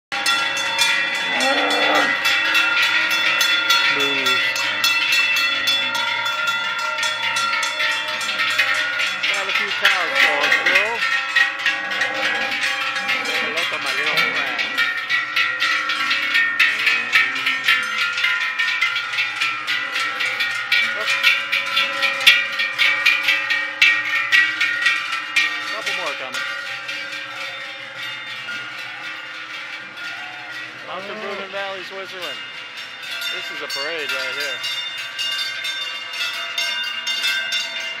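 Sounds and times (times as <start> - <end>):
cowbells clanging: 0.1 - 38.0.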